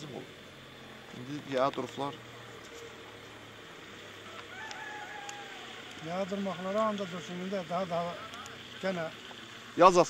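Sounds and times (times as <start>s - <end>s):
rooster crowing: 4.0s - 6.4s.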